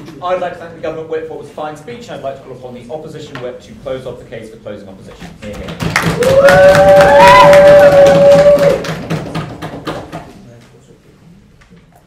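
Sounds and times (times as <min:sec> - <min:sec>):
audience knocking on desks: 0:05.4 - 0:10.4
person cheering: 0:06.0 - 0:08.9.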